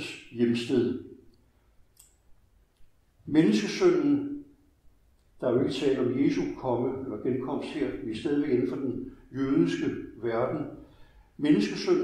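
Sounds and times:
faint sharp click: 0:01.3 - 0:02.9.

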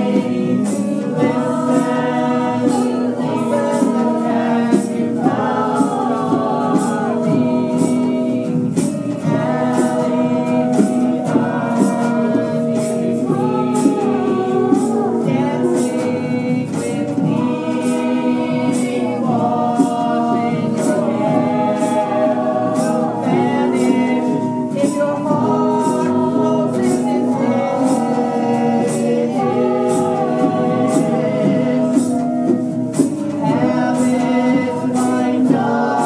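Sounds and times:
group of voices singing: 0:00.0 - 0:36.0.

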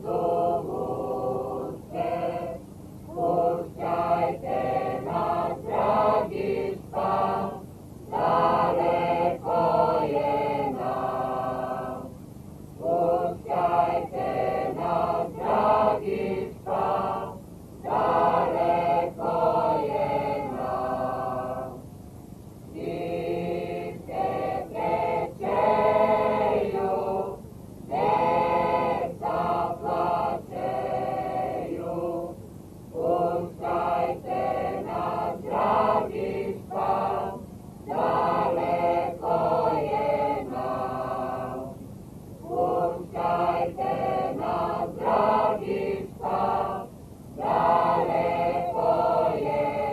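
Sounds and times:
mixed choir singing unaccompanied: 0:00.0 - 0:12.2, 0:12.8 - 0:21.9, 0:22.7 - 0:41.8, 0:42.4 - 0:49.9.

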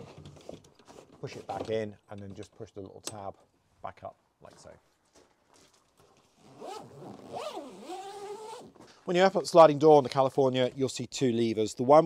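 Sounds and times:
zip being pulled: 0:06.4 - 0:08.8.

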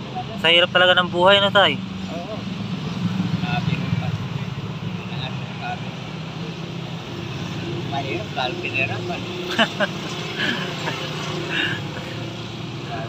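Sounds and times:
faint street noise: 0:00.0 - 0:13.0.

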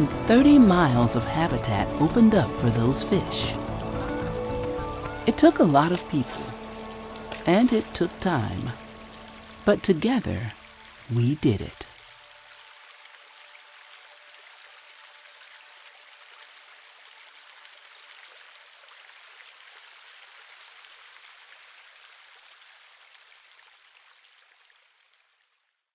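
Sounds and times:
flowing creek water: 0:00.0 - 0:25.8.

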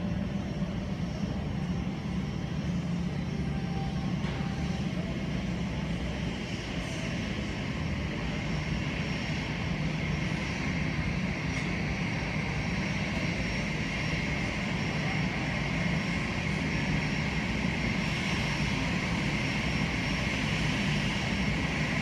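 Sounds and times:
high jet engine whine: 0:00.0 - 0:22.0
jet engines droning: 0:00.0 - 0:22.0.

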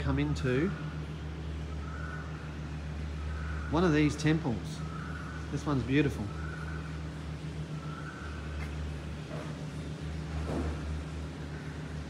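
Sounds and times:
low mechanical rumble: 0:00.0 - 0:12.0.

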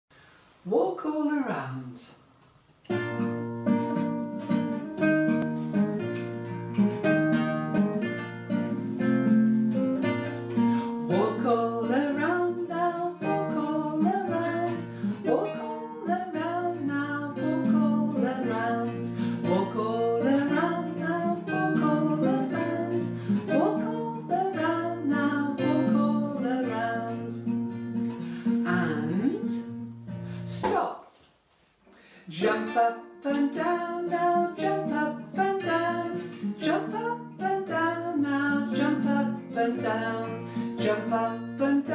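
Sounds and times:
strummed nylon-string guitar: 0:02.9 - 0:30.9, 0:32.3 - 0:41.9
woman singing: 0:11.1 - 0:27.6, 0:28.6 - 0:29.8, 0:32.3 - 0:41.9.

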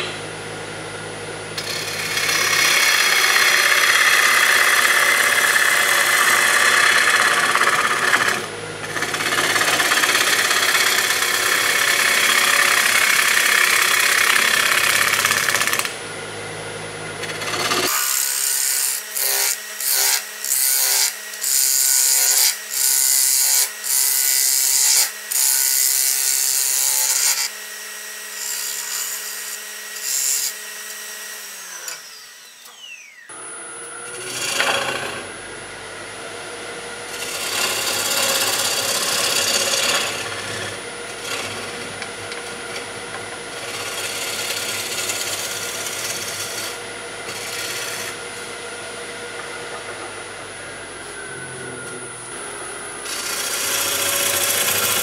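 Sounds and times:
lathe hum: 0:00.0 - 0:55.0
turning tool scraping wood on lathe: 0:01.6 - 0:15.8, 0:17.2 - 0:27.5, 0:34.1 - 0:35.3, 0:37.1 - 0:48.5, 0:53.0 - 0:55.0.

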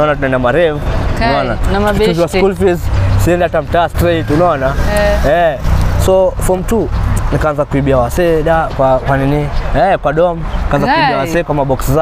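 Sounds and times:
conversational speech: 0:00.0 - 0:12.0
road traffic rumble: 0:00.0 - 0:12.0.

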